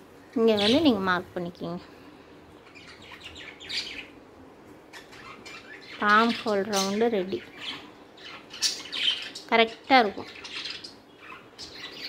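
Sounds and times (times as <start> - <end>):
faint bird chirps: 2.6 - 4.2, 4.9 - 12.0.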